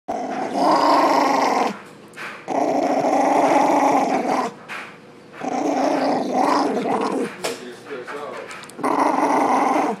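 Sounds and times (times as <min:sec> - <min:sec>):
dog growling: 0:00.1 - 0:01.8, 0:02.4 - 0:04.6, 0:05.4 - 0:07.5, 0:08.6 - 0:10.0.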